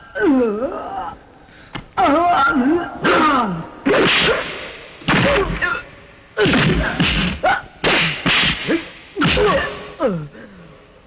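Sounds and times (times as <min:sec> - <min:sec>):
punch hits with swishes: 0:03.9 - 0:05.5, 0:06.4 - 0:09.7.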